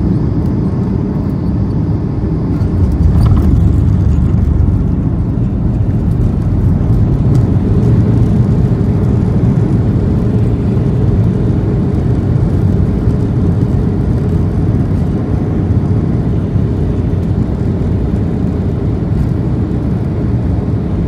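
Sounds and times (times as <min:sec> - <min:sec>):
low rumble of engines and wheels: 0:00.0 - 0:21.0.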